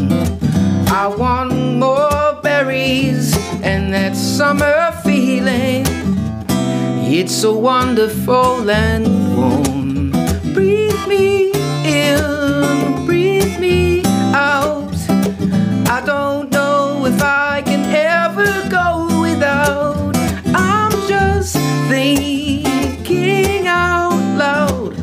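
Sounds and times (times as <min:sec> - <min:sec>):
man singing: 0:00.0 - 0:06.1, 0:07.0 - 0:25.0
acoustic guitar chords: 0:00.0 - 0:25.0.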